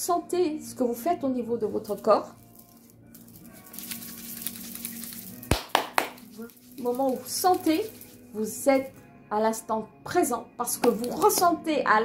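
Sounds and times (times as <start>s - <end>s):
hand rubbing over clothing: 2.4s - 8.9s
sharp pats on body: 3.8s - 6.9s, 10.8s - 11.5s.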